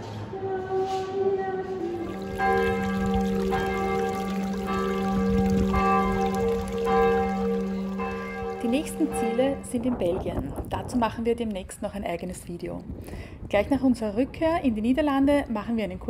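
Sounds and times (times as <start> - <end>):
church bells ringing: 2.0 - 10.4.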